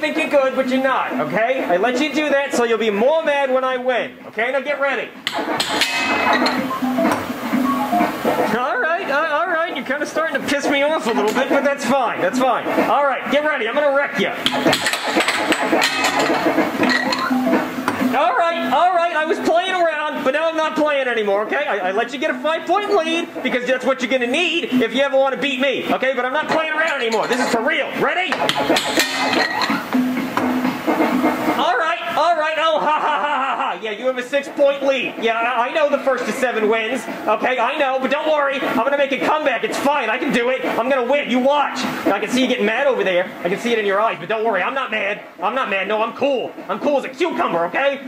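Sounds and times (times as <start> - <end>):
air fan hiss: 0.0 - 48.0
air hockey table beeping tune: 5.3 - 8.5, 14.5 - 18.8, 28.4 - 31.5.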